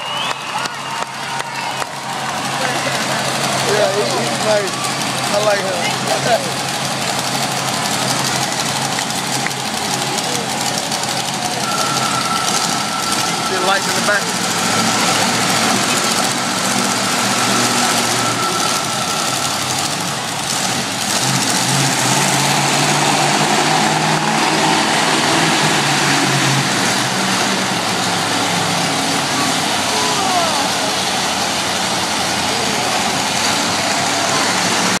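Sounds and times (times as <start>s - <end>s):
crowd din: 0.0s - 35.0s
truck engine running: 0.0s - 35.0s.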